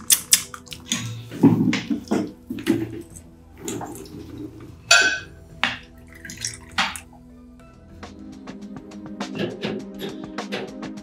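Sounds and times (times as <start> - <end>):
soft background music: 0.0 - 11.0
glassware and cutlery clinking: 4.9 - 5.8.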